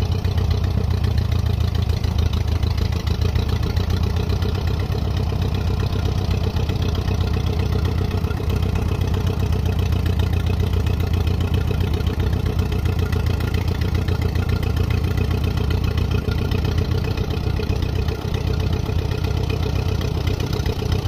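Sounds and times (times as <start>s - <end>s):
tractor engine running at low speed: 0.0s - 21.0s.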